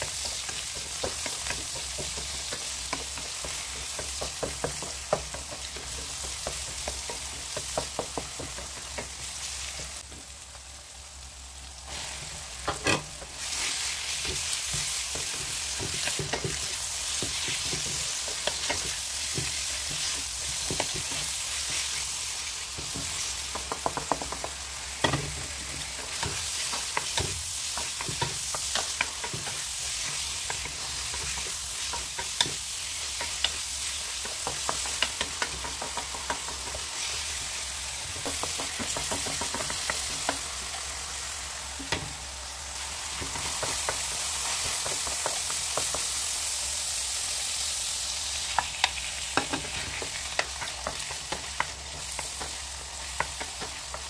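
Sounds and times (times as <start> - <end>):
spatula clicking and scraping pan: 0.0 - 9.8, 12.6 - 40.6, 48.4 - 54.0
chicken sizzling in hot oil: 0.0 - 54.0.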